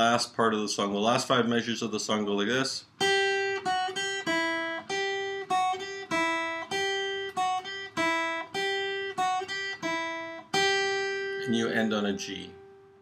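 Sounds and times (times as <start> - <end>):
acoustic guitar plucked notes: 2.9 - 13.0.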